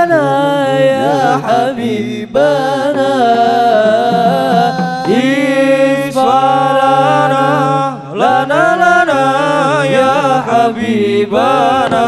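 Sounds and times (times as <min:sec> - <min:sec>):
men singing chant through pa: 0:00.0 - 0:12.0.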